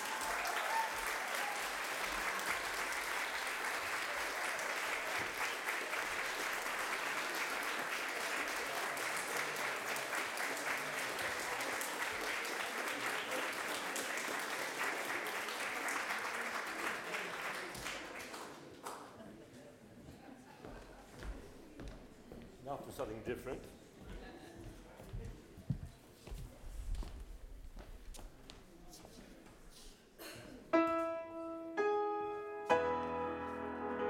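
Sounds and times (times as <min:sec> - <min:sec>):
audience applauding: 0:00.0 - 0:19.2.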